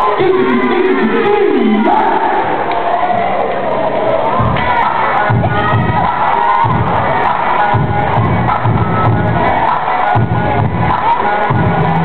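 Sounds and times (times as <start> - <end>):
loud music with heavy bass: 0.0 - 3.3, 4.0 - 12.0
crowd cheering and shouting: 0.0 - 12.0.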